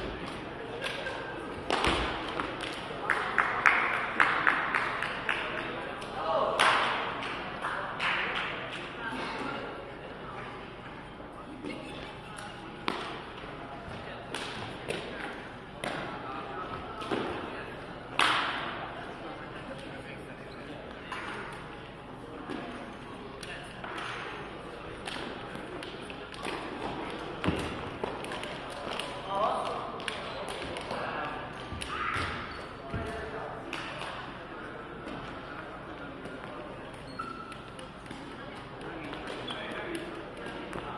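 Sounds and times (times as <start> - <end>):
feet kicking shuttlecock: 0.0 - 2.9, 25.0 - 31.1.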